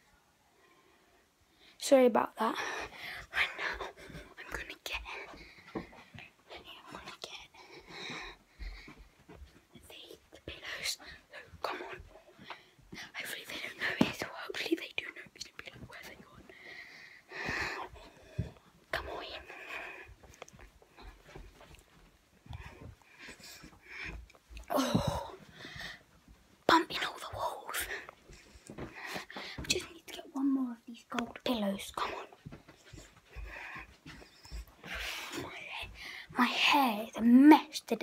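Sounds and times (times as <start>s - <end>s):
girl whispering: 1.8s - 5.4s, 6.5s - 8.2s, 9.8s - 12.2s, 12.9s - 16.5s, 18.9s - 20.1s, 26.7s - 28.1s, 29.3s - 32.4s, 35.1s - 38.0s.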